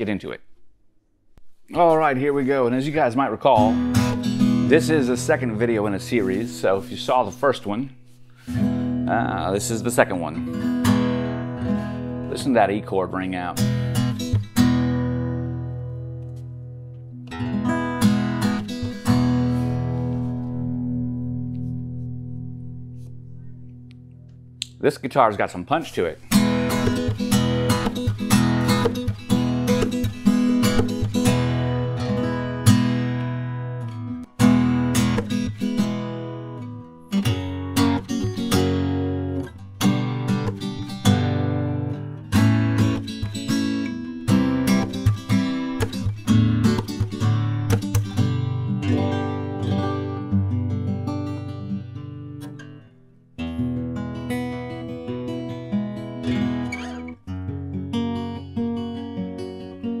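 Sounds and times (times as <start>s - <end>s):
acoustic guitar strumming chords: 1.7s - 24.6s, 26.2s - 60.0s.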